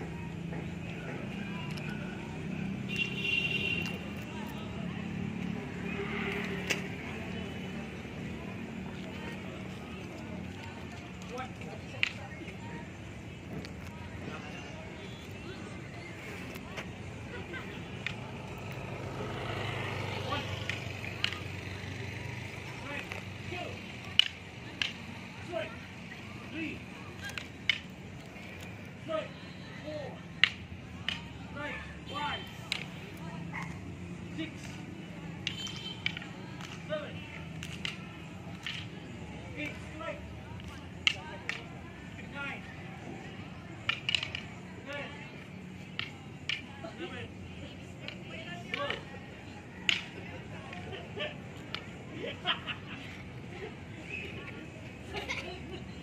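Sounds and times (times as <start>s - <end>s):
background noise: 0.0s - 56.0s
sticks clacking together: 24.0s - 25.1s, 43.8s - 44.5s.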